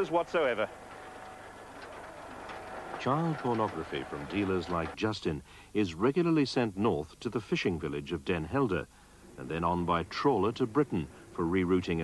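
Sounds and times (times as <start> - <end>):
roller shutter rattling down: 0.0 - 5.0.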